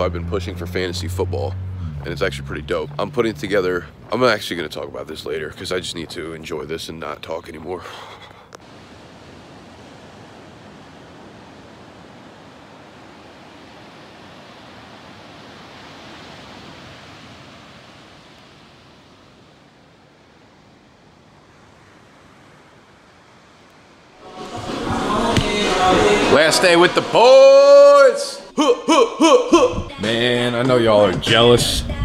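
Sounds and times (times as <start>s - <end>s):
waves breaking on beach: 8.1s - 28.5s
music: 24.2s - 27.3s, 29.7s - 32.0s
loud voice: 26.2s - 31.9s.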